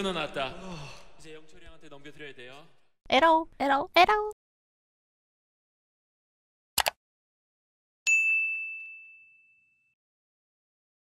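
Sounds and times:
electronic bell ding: 8.1s - 10.0s.

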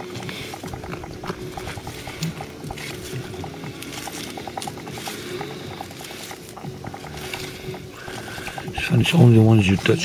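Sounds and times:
outdoor background noise: 0.0s - 10.0s
small animal chirping: 0.0s - 10.0s.

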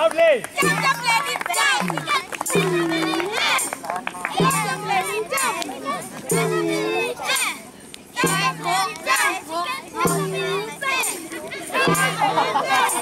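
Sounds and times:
children chanting: 0.6s - 3.8s, 4.4s - 13.0s
children laughing: 11.8s - 13.0s.

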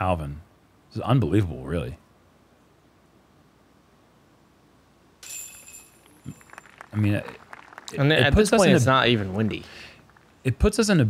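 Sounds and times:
disc hitting metal chains: 5.2s - 6.6s.

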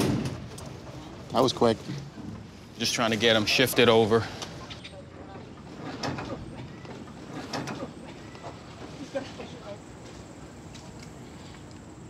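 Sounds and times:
outdoor background: 0.0s - 12.0s.

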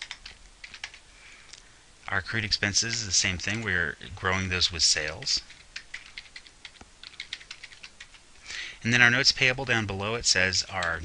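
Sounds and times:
computer keyboard typing: 0.0s - 1.0s, 5.0s - 8.2s.

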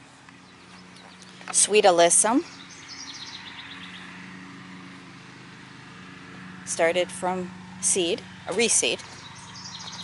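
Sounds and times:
songbird trilling: 0.4s - 4.2s, 8.6s - 10.0s.

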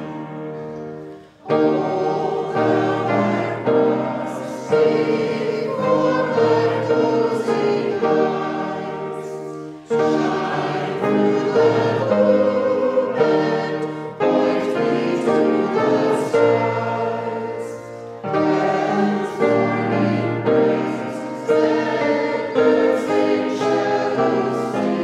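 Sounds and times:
congregation singing a hymn: 0.0s - 25.0s
keyboard accompaniment: 0.0s - 25.0s.

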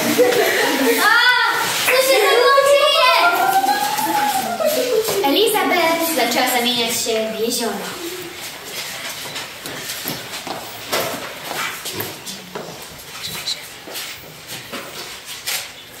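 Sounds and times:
shuffling footsteps on parquet: 8.2s - 15.7s.

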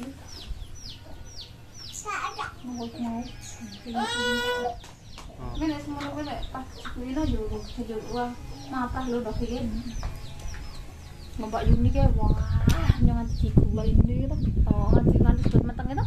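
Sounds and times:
chickens clucking: 0.0s - 13.6s.

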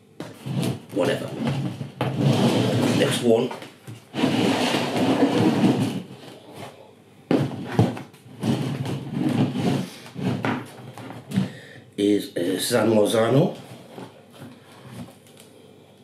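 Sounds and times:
plastic pots scraping on table: 0.2s - 11.5s.

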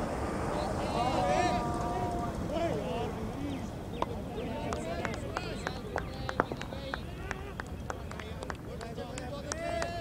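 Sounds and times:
distant voices calling: 0.0s - 10.0s.

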